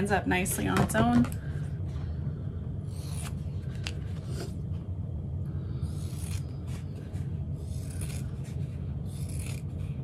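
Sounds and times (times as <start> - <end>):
low background hum: 0.0 - 10.0
scissors cutting vinyl: 2.9 - 4.5, 5.8 - 10.0.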